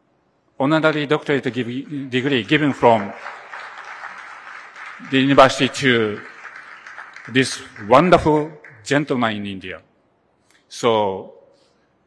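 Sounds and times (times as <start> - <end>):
audience applauding: 1.5 - 9.1.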